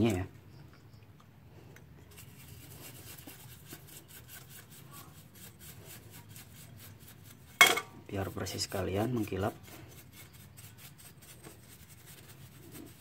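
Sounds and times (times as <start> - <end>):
paintbrush scrubbing metal: 2.0 - 13.0.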